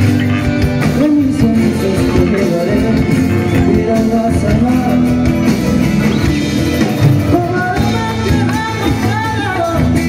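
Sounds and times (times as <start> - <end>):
latin band playing: 0.0 - 10.0.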